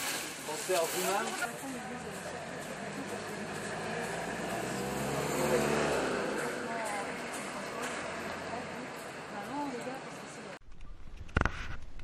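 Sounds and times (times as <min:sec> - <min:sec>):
engine humming: 0:00.0 - 0:10.6.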